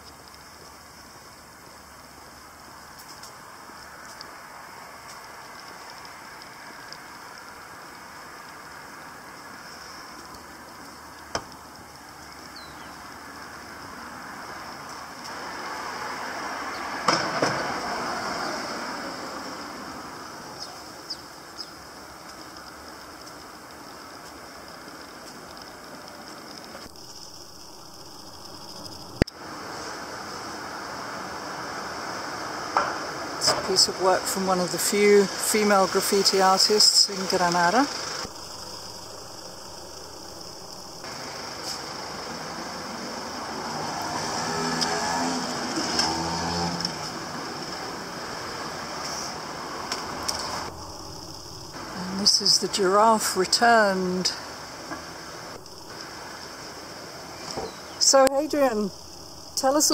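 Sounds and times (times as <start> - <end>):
street traffic: 0.0 - 59.9
car passing close: 13.0 - 22.1, 28.5 - 59.9.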